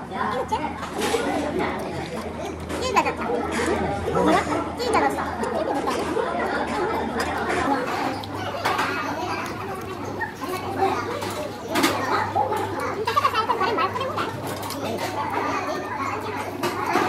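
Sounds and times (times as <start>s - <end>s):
indistinct chatter of voices: 0.0s - 17.0s.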